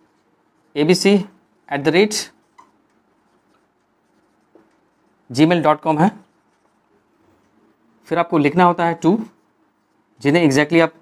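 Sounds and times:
marker pen writing on whiteboard: 0:00.0 - 0:07.8.

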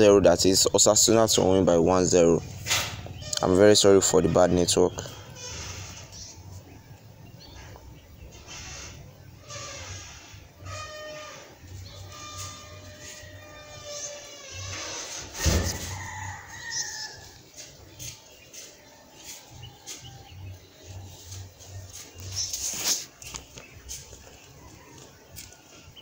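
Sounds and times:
sharp thump: 0:15.4 - 0:15.9.

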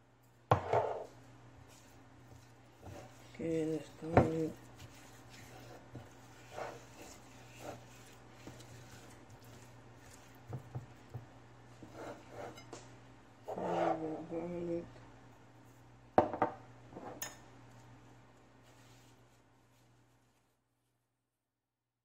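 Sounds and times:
hand rubbing chicken wings: 0:01.7 - 0:11.1.

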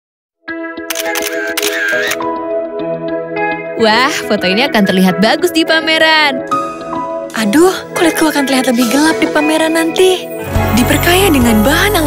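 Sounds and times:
camera shutter firing rapidly: 0:00.9 - 0:02.2.

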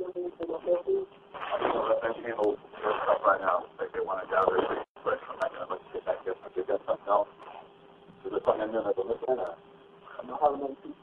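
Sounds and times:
people talking on phone call: 0:00.0 - 0:11.0.

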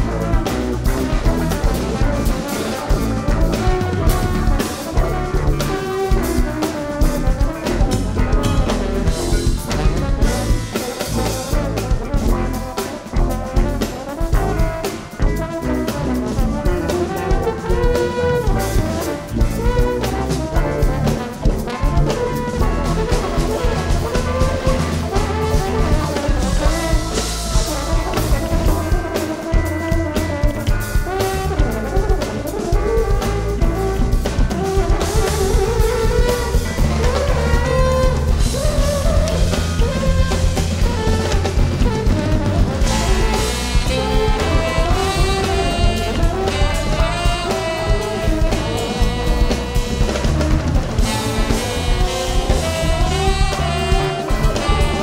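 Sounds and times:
busy drum beat: 0:00.0 - 0:55.0
jazz band playing: 0:00.0 - 0:55.0
trombone melody: 0:00.0 - 0:55.0.

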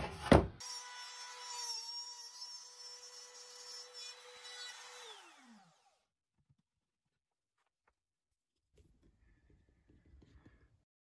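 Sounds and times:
router whining and spinning down: 0:00.6 - 0:06.1.

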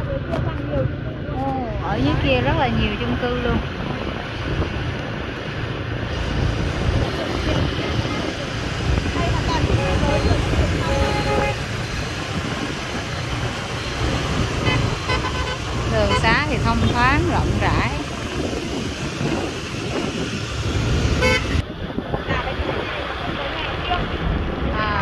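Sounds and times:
street traffic rumble: 0:00.0 - 0:25.0
wind on microphone: 0:00.0 - 0:25.0
horn toots: 0:09.3 - 0:12.1, 0:14.4 - 0:17.2, 0:21.1 - 0:21.6.

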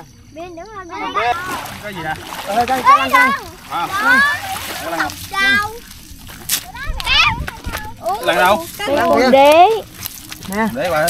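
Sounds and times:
voices talking and calling out: 0:00.0 - 0:11.0
water splashing and sloshing: 0:01.0 - 0:11.0.

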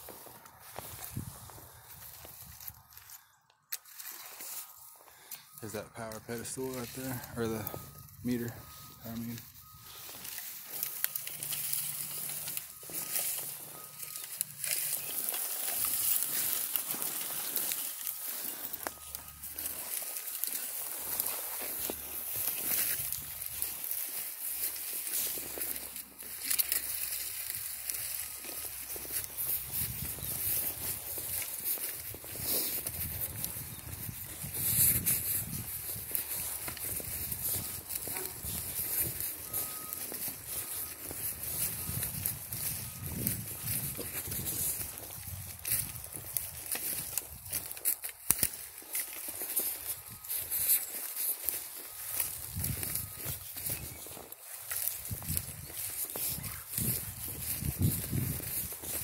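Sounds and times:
footsteps crunching dry leaves: 0:00.0 - 0:59.0.

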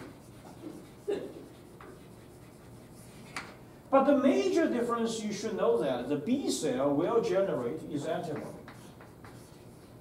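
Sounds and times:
chalk tap: 0:00.0 - 0:02.6, 0:08.3 - 0:09.6
chalk scraping on blackboard: 0:00.0 - 0:03.4, 0:08.7 - 0:09.9.

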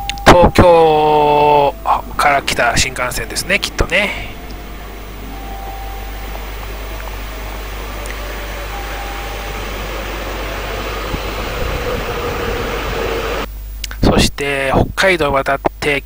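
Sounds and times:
train rushing noise: 0:00.0 - 0:13.5.

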